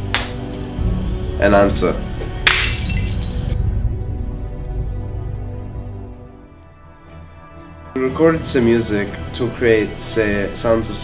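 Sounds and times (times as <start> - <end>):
background music: 0.0 - 11.0
glass smashing on tiled floor: 2.4 - 3.6
glass shards tinkling: 2.5 - 3.6.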